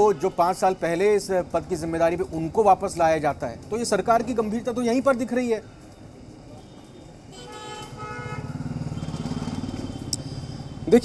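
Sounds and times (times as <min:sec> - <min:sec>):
vehicle horn: 0:06.6 - 0:09.2
motor vehicle passing: 0:08.2 - 0:10.9.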